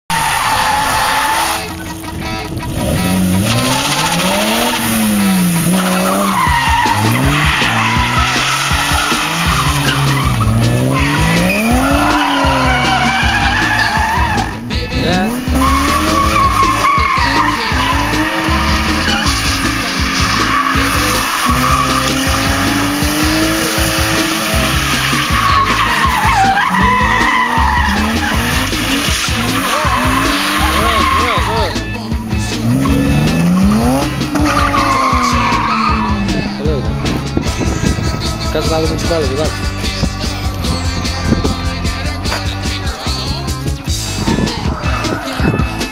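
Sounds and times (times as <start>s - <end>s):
car engine revving: 0.0s - 45.9s
tyres squealing: 0.1s - 45.9s.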